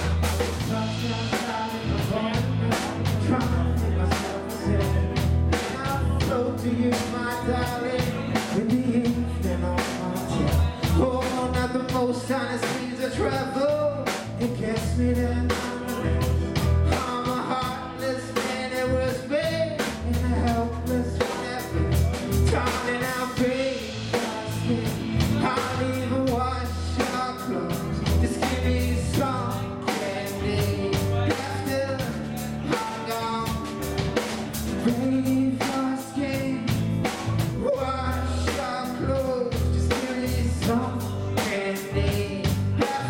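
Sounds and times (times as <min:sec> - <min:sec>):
bass guitar: 0:00.0 - 0:43.0
drum kit: 0:00.0 - 0:43.0
electric guitar: 0:00.0 - 0:43.0
person singing: 0:00.0 - 0:43.0.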